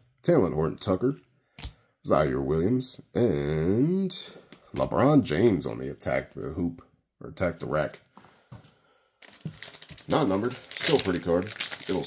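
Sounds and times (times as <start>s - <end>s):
plastic wrapper crinkling: 9.2s - 12.0s.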